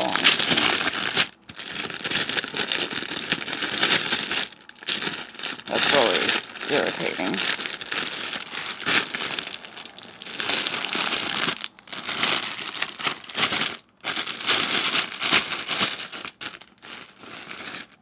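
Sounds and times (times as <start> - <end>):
plastic bag crinkling: 0.0 - 18.0.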